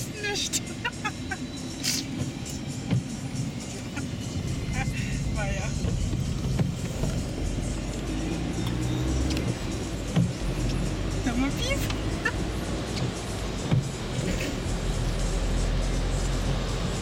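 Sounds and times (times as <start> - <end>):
engine and tyre rumble in car: 0.0 - 17.0.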